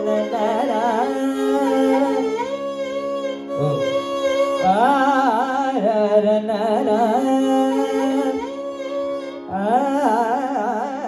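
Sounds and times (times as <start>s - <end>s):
violin melody: 0.0s - 11.0s.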